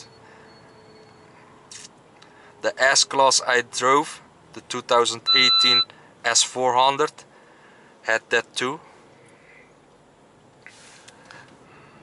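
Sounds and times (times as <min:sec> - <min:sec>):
soft hiss: 0:09.0 - 0:11.6.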